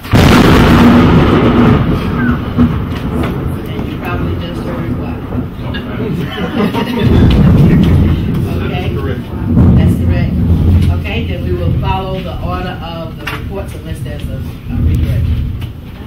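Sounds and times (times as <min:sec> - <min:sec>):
loud deep rumble: 0:00.0 - 0:16.0
people murmuring and laughing: 0:01.9 - 0:16.0.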